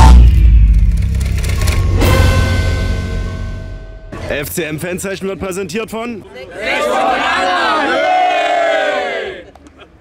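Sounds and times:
loud hit with low boom: 0.0s - 4.4s
sustained tones: 0.0s - 4.8s
crackling splintering noises: 0.8s - 1.9s.

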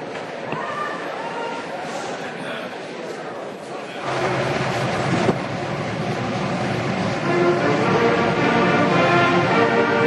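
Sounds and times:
marching band playing: 6.4s - 10.0s.

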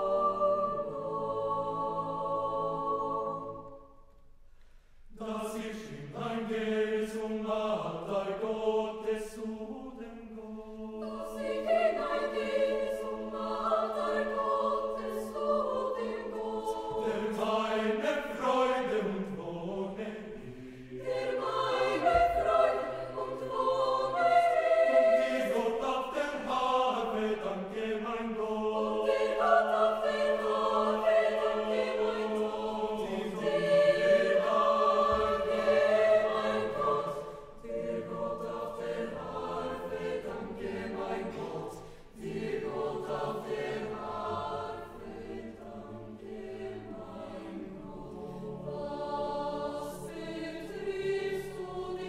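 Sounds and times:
large mixed choir singing: 0.0s - 4.2s, 5.0s - 52.0s.

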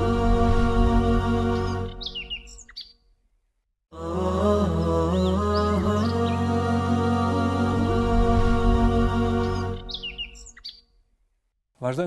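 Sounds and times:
high bird chirps: 1.6s - 3.1s, 9.4s - 11.0s.

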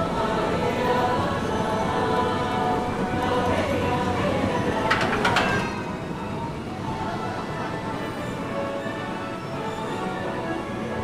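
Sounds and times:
ride machinery rumble: 0.0s - 10.8s
machinery clattering knocks: 4.8s - 5.9s.

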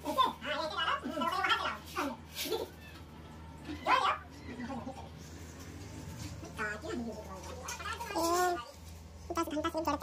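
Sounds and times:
people talking: 0.0s - 2.7s, 6.4s - 10.0s.

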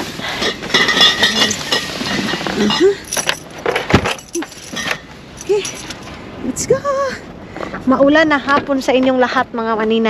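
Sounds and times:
drink containers clinking: 0.5s - 6.2s.

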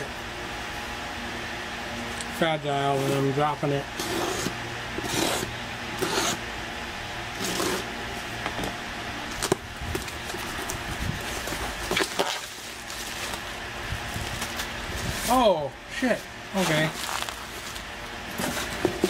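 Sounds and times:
cardboard scraping and rustling: 7.3s - 7.9s, 9.3s - 15.4s, 16.6s - 19.0s.

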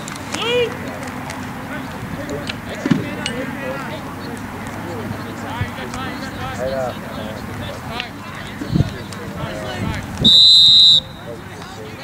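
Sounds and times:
distant voices calling and shouting: 0.0s - 12.0s.

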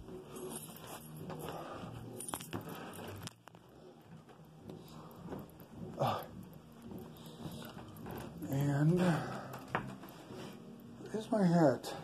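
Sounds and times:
faint rustling and handling noise: 0.0s - 12.0s.

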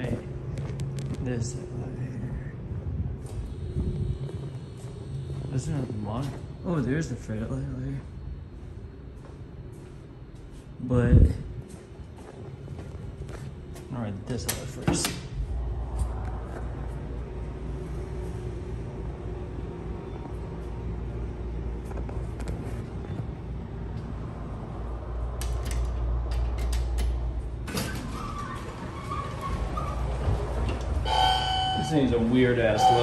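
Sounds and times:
elevator doors opening: 14.3s - 33.0s
elevator pump motor humming: 15.4s - 33.0s.

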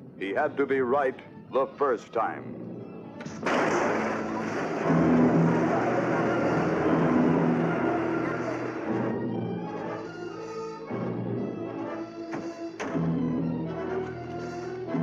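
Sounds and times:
dramatic orchestral music: 0.3s - 15.0s
car tire skidding: 3.5s - 9.1s.

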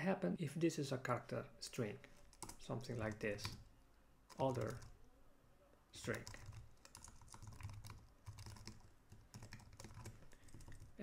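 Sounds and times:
faint keyboard typing: 2.1s - 5.0s, 6.0s - 11.0s.

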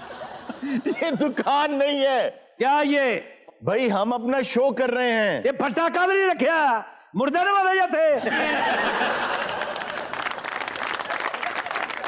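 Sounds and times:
audience applauding: 8.7s - 12.0s.

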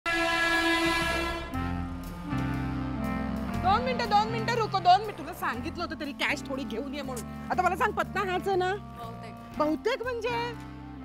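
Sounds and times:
train horn blast: 0.0s - 1.9s
music with low bass line: 0.7s - 11.0s.

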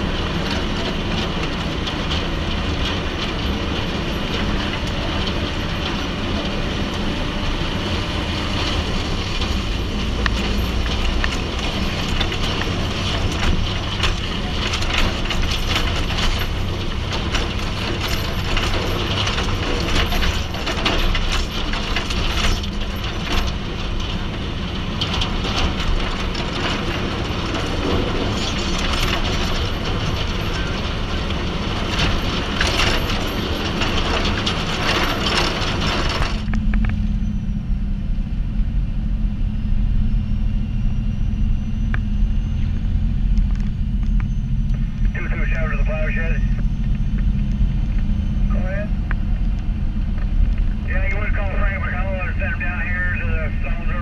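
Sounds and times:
truck engine rumble: 0.0s - 54.0s.

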